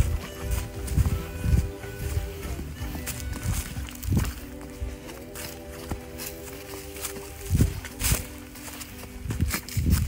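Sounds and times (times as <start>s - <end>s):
background music with sustained tones: 0.0s - 10.0s
footsteps on leaf-covered dirt trail: 0.0s - 10.0s.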